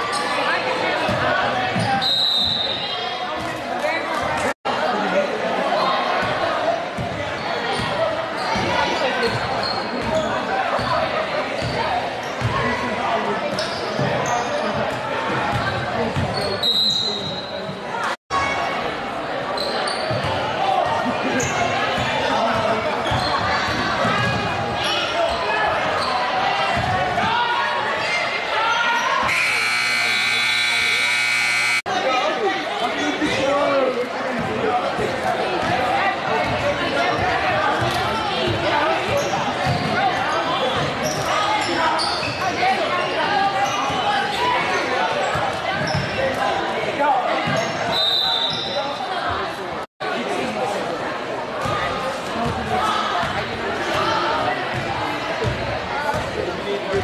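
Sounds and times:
spectators' voices: 0.0 - 57.0
buzzer: 29.3 - 31.9.

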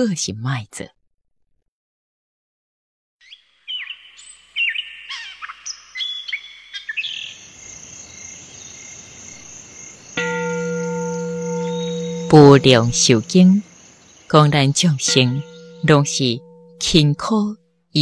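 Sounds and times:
birds chirping: 3.2 - 18.0
high insect-like trill: 9.6 - 17.4
sustained low tone: 10.2 - 13.7, 14.4 - 17.6.

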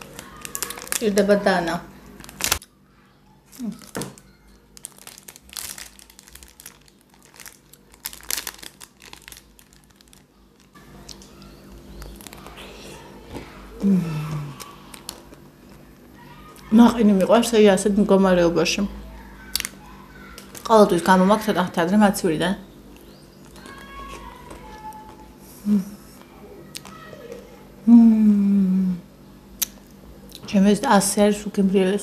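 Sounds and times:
woman humming mmm: 13.8 - 14.6, 25.6 - 26.2, 27.8 - 29.1
clicking mouth sounds eating: 29.6 - 30.5.

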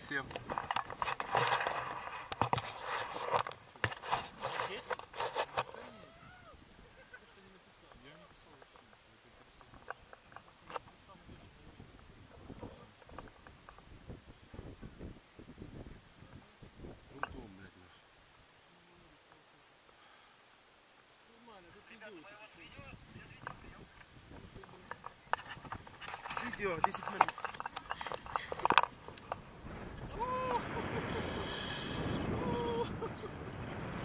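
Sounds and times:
low wind rumble: 22.6 - 34.0.

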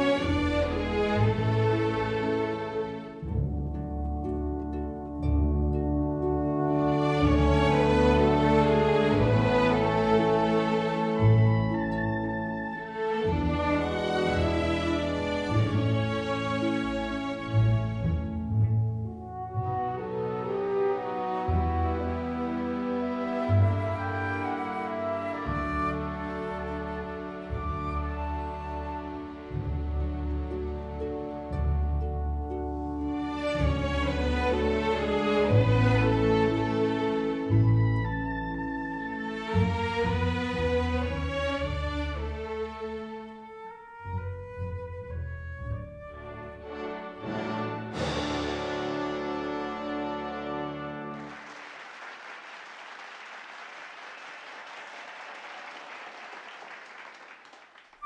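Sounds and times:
bowed strings: 0.0 - 51.3
orchestra playing: 0.0 - 51.8
orchestra loud full chord: 46.4 - 51.3.

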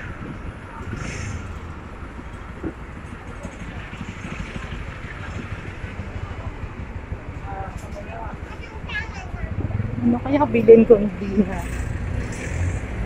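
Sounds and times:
faint voices: 0.0 - 13.0
vehicles passing: 0.0 - 13.0.

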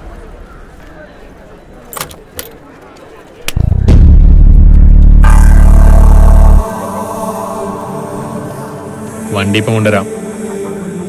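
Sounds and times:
background music: 3.6 - 11.0.

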